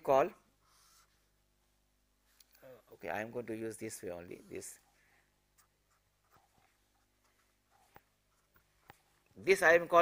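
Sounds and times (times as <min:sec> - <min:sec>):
pen writing on surface: 0:05.6 - 0:09.1.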